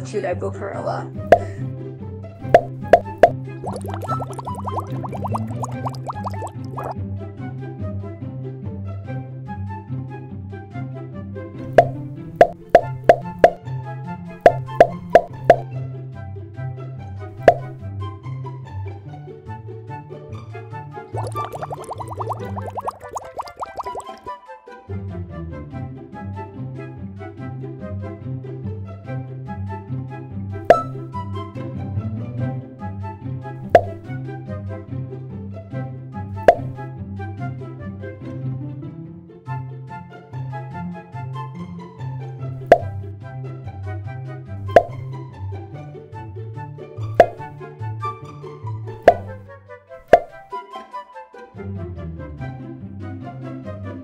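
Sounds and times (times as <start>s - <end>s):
cartoon boop pops: 1.3s - 1.6s, 2.4s - 7.0s, 11.7s - 13.6s, 14.4s - 15.6s, 17.4s - 17.8s, 21.2s - 24.3s, 30.7s - 31.1s, 33.6s - 34.0s, 36.4s - 36.8s, 42.6s - 43.0s, 44.7s - 45.1s, 47.2s - 47.6s, 49.0s - 49.4s, 50.0s - 50.5s
light background music: 28.9s - 54.0s.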